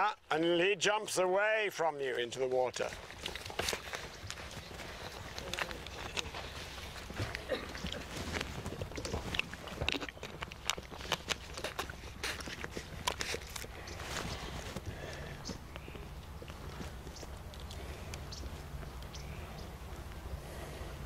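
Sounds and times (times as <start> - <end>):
horse hooves thudding on turf: 2.7 - 17.5.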